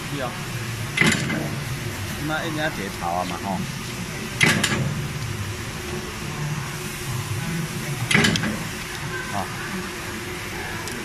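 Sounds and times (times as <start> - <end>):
machine humming: 0.0 - 11.0.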